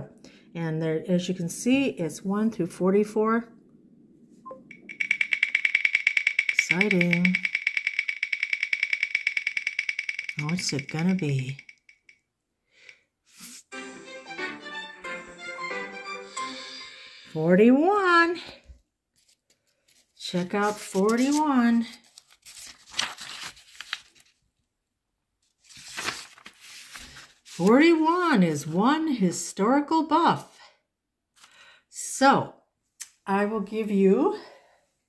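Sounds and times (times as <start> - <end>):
rapid ticking clicks from phone app: 4.7 - 12.2
notebook pages turning and rustling: 19.2 - 24.4, 25.4 - 27.8
page flicks: 22.6 - 24.2, 25.7 - 27.6.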